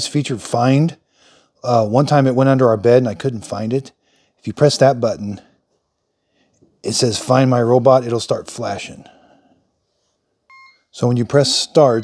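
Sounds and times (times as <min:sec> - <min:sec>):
robot vacuum electronic beep: 0:10.5 - 0:10.9.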